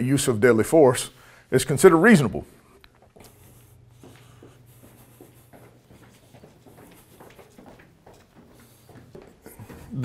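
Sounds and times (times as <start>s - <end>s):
footsteps on stairs: 2.9s - 10.0s.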